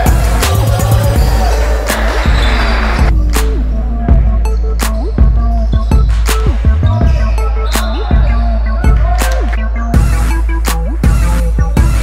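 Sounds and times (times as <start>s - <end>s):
heavy steady bass: 0.0s - 12.0s.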